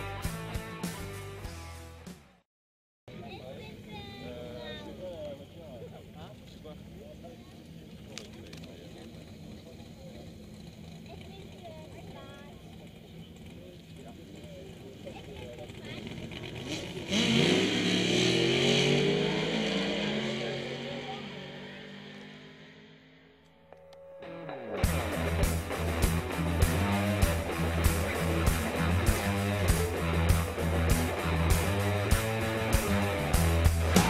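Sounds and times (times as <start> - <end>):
nearby voices: 3.1 - 17.1, 18.9 - 21.9
race car engine: 5.8 - 34.0.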